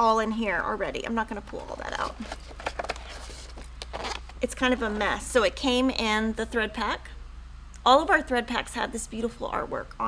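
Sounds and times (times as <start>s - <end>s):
rummaging through zippered bag: 1.7s - 5.2s.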